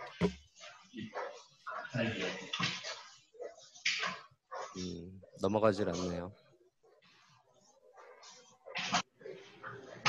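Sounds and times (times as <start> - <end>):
quiet voice murmuring: 0.9 - 2.6, 4.6 - 6.4.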